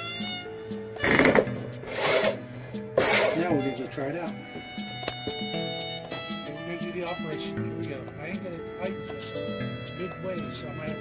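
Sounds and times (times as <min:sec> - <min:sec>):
reel mower whirring clatter: 0:03.0 - 0:03.5.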